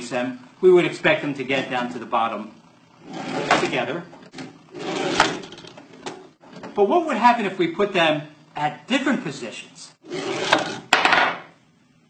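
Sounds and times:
balls rolling on tracks: 0:03.0 - 0:06.8, 0:10.0 - 0:11.4.

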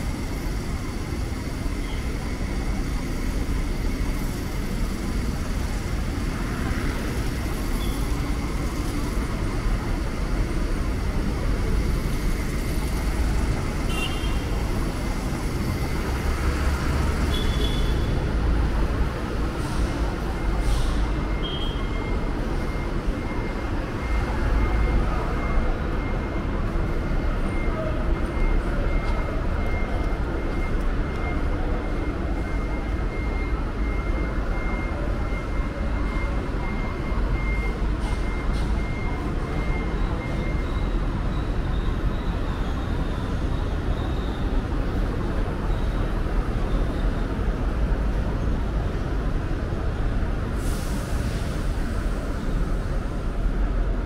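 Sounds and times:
street traffic rumble: 0:00.0 - 0:54.0.

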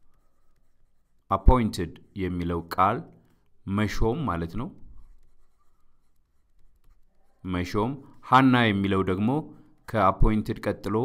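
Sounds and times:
stylus scratching on tablet: 0:00.0 - 0:11.0
man speaking: 0:01.3 - 0:04.8, 0:07.4 - 0:11.0.

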